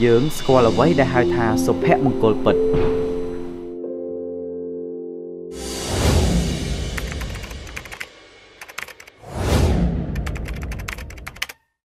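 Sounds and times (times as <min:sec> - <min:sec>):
keyboard typing clicks: 0:07.0 - 0:09.1, 0:10.2 - 0:11.6.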